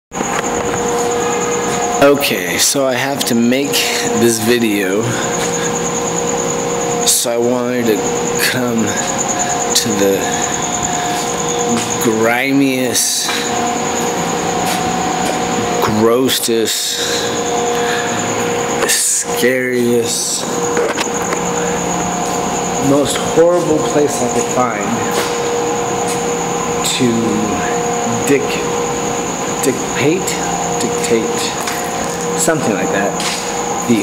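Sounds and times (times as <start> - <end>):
thin high whine: 0.1 - 34.0
machine whirring: 0.2 - 34.0
mechanical drone with low tones: 0.2 - 34.0.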